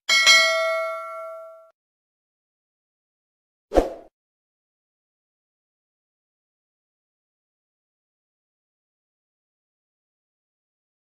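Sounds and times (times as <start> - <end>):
bright bell chime: 0.1 - 1.7.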